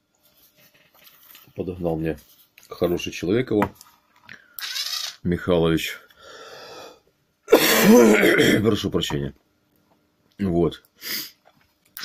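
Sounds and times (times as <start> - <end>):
man breathing in: 6.2 - 7.1
man coughing loudly: 7.5 - 8.8.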